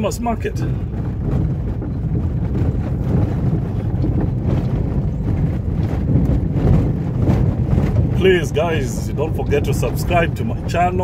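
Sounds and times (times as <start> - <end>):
tyres rumbling on dirt: 0.0 - 11.0.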